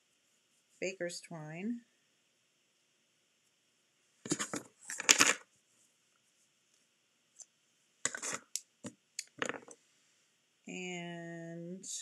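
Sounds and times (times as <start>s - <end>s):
rustles and clicks of handling: 4.2s - 9.8s.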